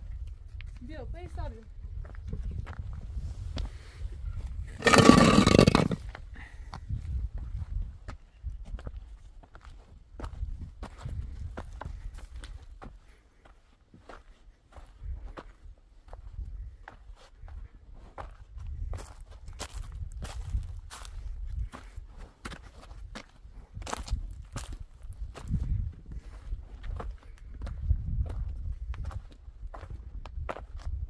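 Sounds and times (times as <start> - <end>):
footsteps on stony ground: 0.1 - 3.8, 4.8 - 31.0.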